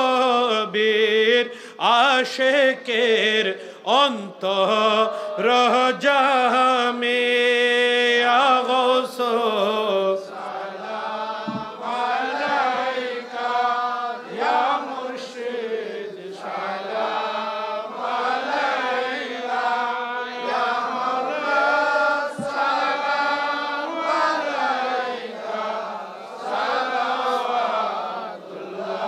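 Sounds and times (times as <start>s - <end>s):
men chanting devotional song: 0.0s - 29.0s.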